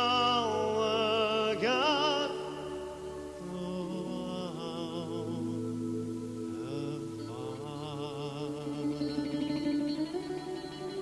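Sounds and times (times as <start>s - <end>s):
picked guitar notes: 0.0s - 11.0s.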